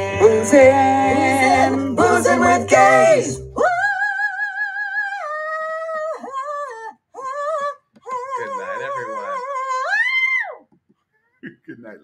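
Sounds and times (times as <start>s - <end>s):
man singing falsetto: 8.1s - 10.2s.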